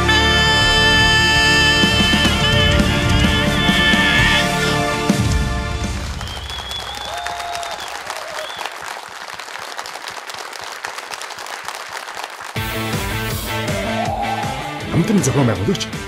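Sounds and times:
audience applauding: 0.0 - 14.8.

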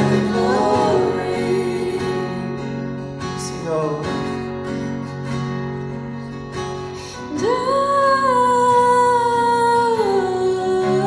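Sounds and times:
woman singing: 0.0 - 2.7, 7.2 - 11.0
acoustic guitars: 0.0 - 11.0.

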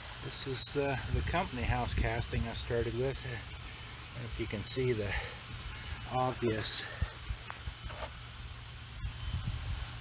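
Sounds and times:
faint outdoor hiss: 0.0 - 10.0.

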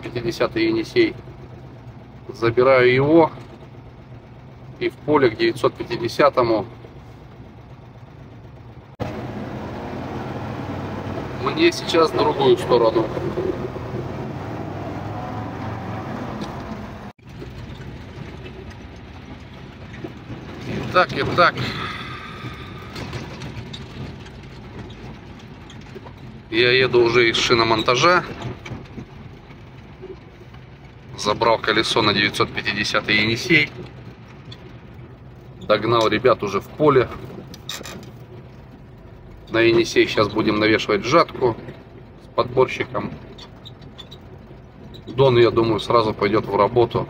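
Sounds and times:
road noise: 0.0 - 47.0
truck engine running: 0.0 - 47.0
low hum: 0.8 - 35.8
short rattle: 11.4 - 47.0.

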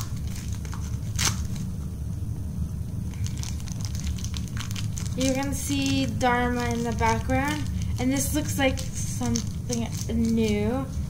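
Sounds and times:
plastic packaging crinkling: 0.0 - 1.7, 3.0 - 11.0
steady low hum: 0.0 - 11.0.

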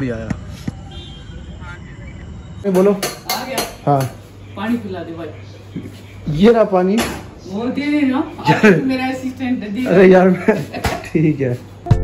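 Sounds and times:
woman talking: 7.4 - 10.0.

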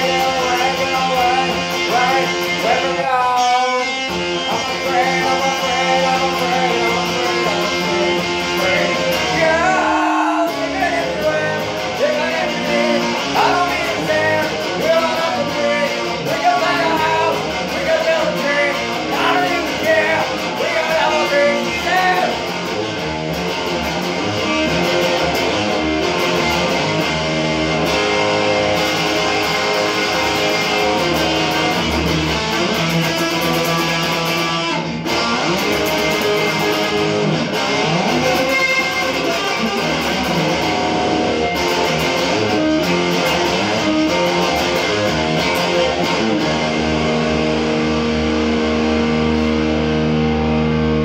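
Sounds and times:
electric guitar playing: 0.0 - 51.0.

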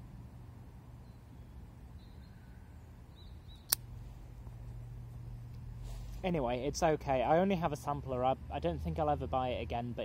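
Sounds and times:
low steady hum: 0.0 - 8.7
faint bird chirps: 0.9 - 3.8
lighter click: 3.5 - 3.9.

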